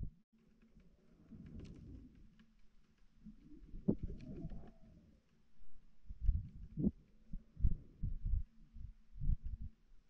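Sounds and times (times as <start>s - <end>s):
irregular low pulses: 0.0s - 0.2s, 5.6s - 9.8s.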